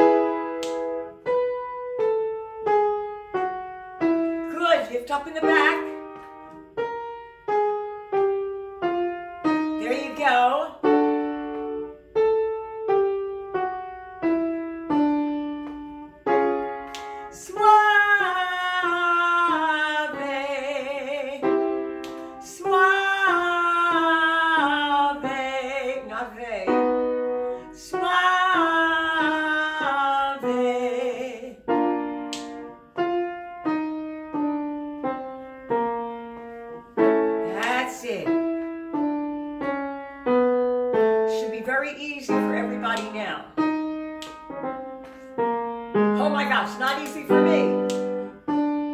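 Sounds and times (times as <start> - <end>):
piano accompaniment: 0.0 - 48.9
woman singing scales: 4.2 - 6.2, 9.5 - 11.3, 16.9 - 32.8, 40.5 - 44.6, 45.9 - 48.8.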